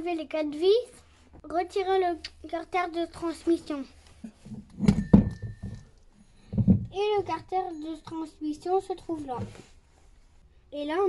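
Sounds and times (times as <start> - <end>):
faint metallic ring: 4.2 - 8.4
metal engine cover clunks and knocks: 4.5 - 7.0.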